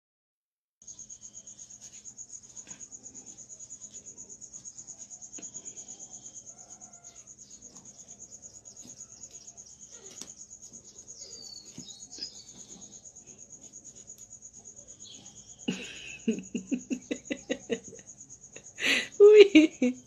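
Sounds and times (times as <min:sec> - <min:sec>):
cricket chirping: 0:00.8 - 0:20.0.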